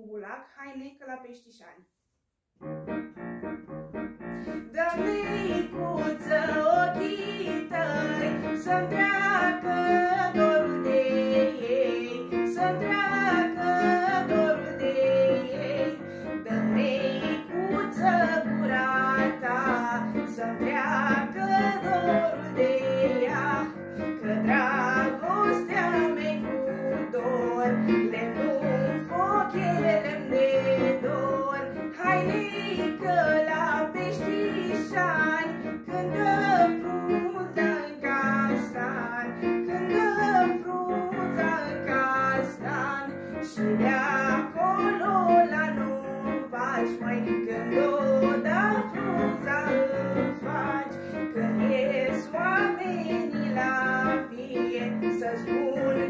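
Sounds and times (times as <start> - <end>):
electronic keyboard chords: 2.6 - 5.7
girl singing folk song: 4.4 - 56.0.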